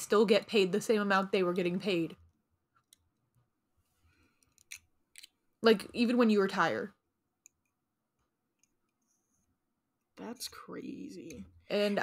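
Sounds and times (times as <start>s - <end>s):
woman speaking: 0.0s - 2.2s, 5.6s - 7.0s, 11.0s - 12.0s.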